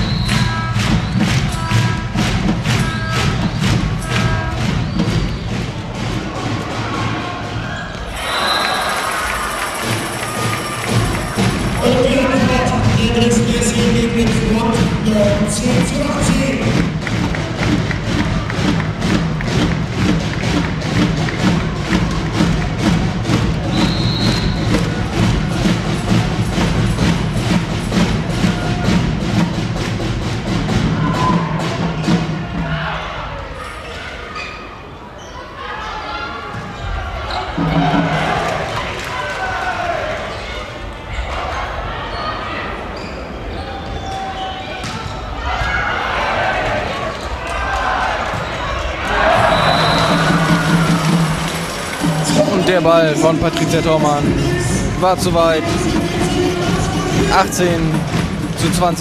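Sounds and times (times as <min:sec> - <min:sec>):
music with fast beat over loudspeakers: 0:00.0 - 0:07.6, 0:09.8 - 0:33.0, 0:49.2 - 0:59.0
crowd voices: 0:00.0 - 0:59.0.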